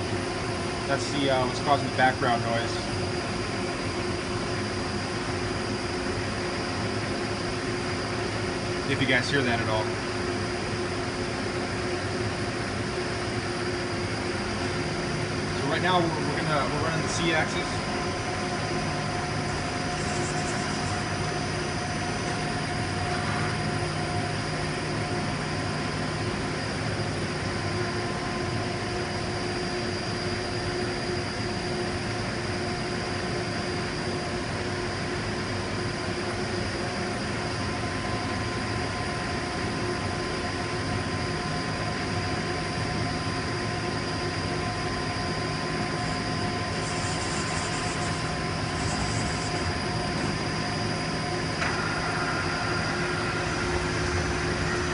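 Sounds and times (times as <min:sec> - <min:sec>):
machine hum with whining tones: 0:00.0 - 0:54.9
air compressor running: 0:13.5 - 0:25.8, 0:45.9 - 0:54.9.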